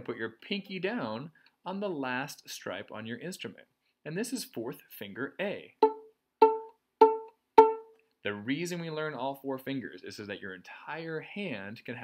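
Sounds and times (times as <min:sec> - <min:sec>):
violin string plucked: 0:05.8 - 0:07.9.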